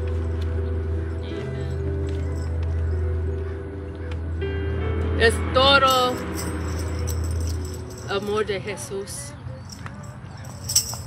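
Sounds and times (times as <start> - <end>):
low hum from speakers: 0.0 - 11.0
tambourine jingles: 5.9 - 8.5, 9.7 - 11.0.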